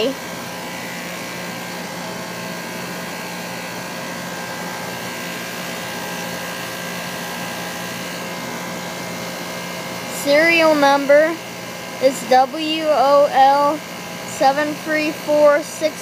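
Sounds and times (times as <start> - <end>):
air conditioner unit running: 0.0 - 16.0.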